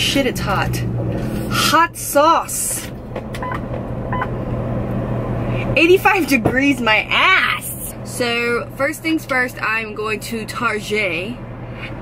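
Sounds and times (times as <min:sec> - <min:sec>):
vehicle engine drone in cabin: 0:00.0 - 0:12.0.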